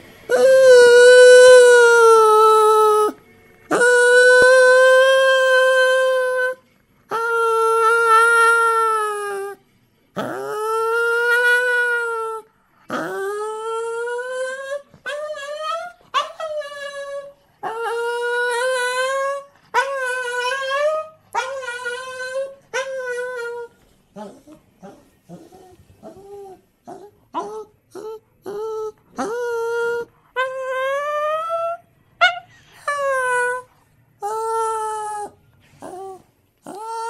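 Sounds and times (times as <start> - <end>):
dog whining and crying: 0.3 - 9.6, 10.2 - 37.0.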